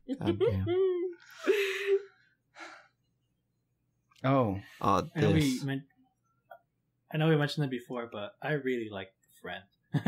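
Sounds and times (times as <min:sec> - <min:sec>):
faint breath: 0:01.3 - 0:03.1.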